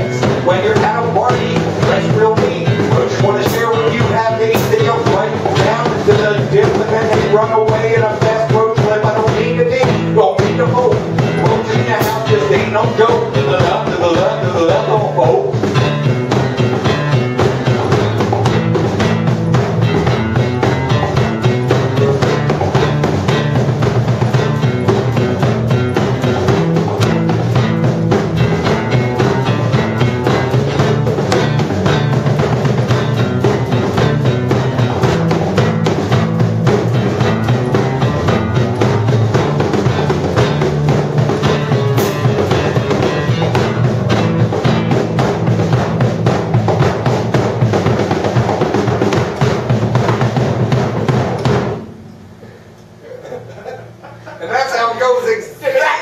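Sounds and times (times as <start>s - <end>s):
guitars playing: 0.0s - 52.4s
drum kit beat: 0.0s - 56.0s.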